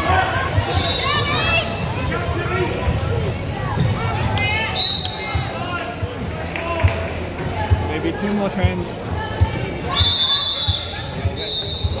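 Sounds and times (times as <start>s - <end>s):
referee's whistle blasts: 4.8s - 5.4s, 9.9s - 12.0s.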